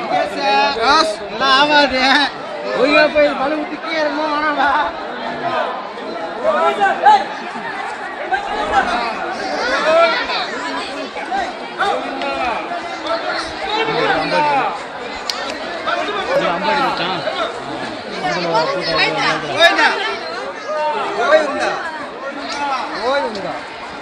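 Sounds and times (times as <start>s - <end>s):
overlapping chatter of voices: 0.0s - 24.0s.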